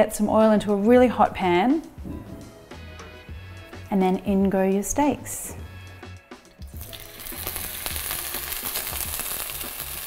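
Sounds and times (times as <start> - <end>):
oil popping and crackling: 6.8 - 10.0
steaks sizzling in a frying pan: 6.8 - 10.0.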